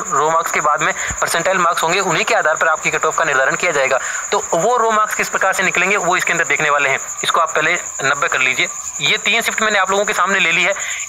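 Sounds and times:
high-pitched whine: 0.0 - 11.0
man speaking: 0.0 - 11.0.

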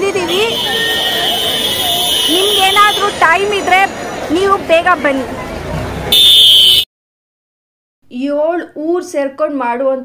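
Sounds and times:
electronic buzzer tone: 6.1 - 6.9.

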